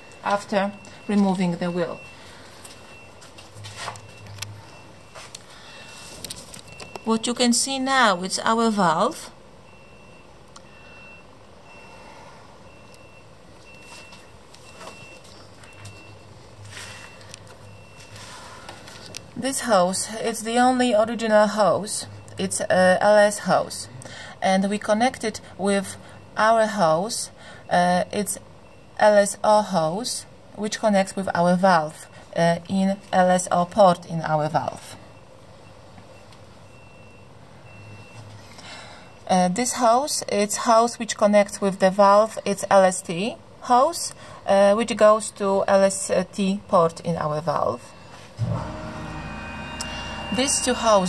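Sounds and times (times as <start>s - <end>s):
faint background hum: 0.0s - 51.0s
electronic warning beeper: 48.4s - 51.0s.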